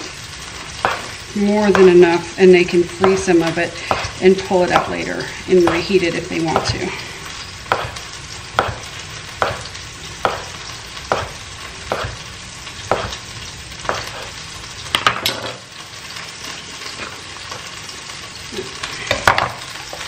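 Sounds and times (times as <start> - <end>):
chicken sizzling in a pan: 0.0 - 20.0.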